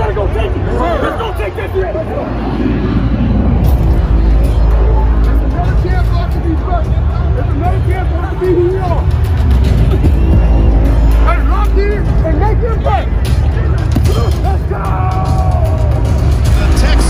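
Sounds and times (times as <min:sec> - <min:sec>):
large crowd hubbub: 0:00.0 - 0:17.0
music with heavy bass: 0:01.9 - 0:17.0.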